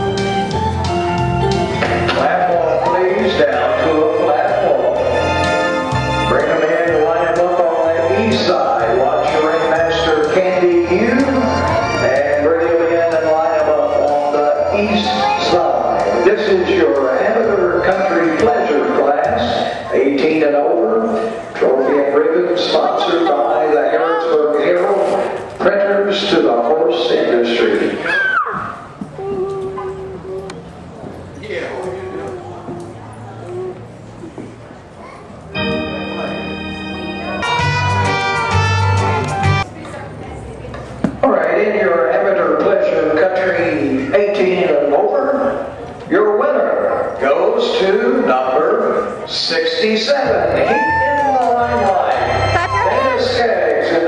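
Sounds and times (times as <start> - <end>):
background music: 0.0 - 24.3, 35.5 - 39.8, 50.1 - 54.0
murmur of crowd: 0.0 - 54.0
man speaking over loudspeaker: 1.9 - 5.3, 6.1 - 28.1, 41.2 - 54.0
person talking: 31.4 - 33.9, 51.4 - 54.0.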